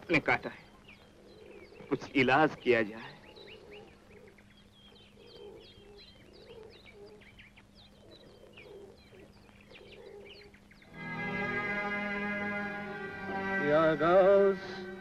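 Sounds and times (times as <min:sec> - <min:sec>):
steady low hum: 0:00.0 - 0:15.0
lower bird calls: 0:00.4 - 0:15.0.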